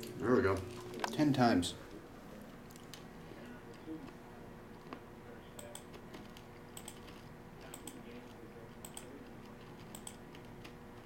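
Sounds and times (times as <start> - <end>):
computer mouse clicking: 5.6 - 10.8.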